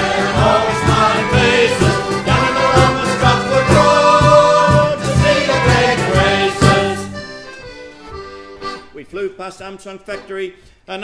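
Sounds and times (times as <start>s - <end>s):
instrumental ensemble: 0.0s - 9.0s
accordion playing held chords: 0.0s - 10.7s.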